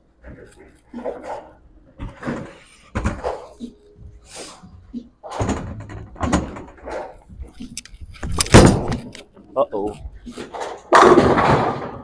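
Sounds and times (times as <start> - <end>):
bowling balls and pins clattering: 0.2 - 9.4, 10.0 - 12.0.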